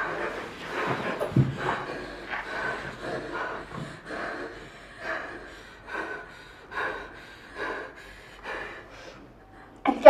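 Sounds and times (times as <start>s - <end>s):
woman breathing heavily: 0.0s - 9.8s.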